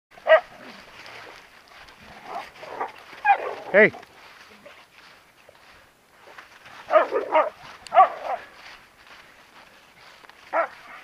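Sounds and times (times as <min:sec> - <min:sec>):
dog barking: 0:00.2 - 0:00.6, 0:06.9 - 0:08.5, 0:10.5 - 0:11.0
dry leaves rustling: 0:00.2 - 0:11.0.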